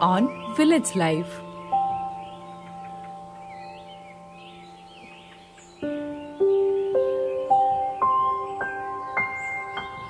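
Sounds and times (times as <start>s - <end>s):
bird chirps: 0.0s - 10.0s
soft background music: 0.0s - 10.0s.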